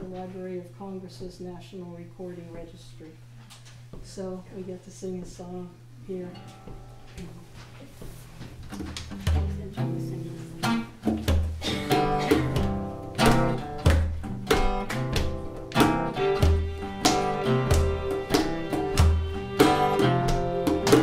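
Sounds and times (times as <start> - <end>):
acoustic guitar picking: 6.2 - 21.0.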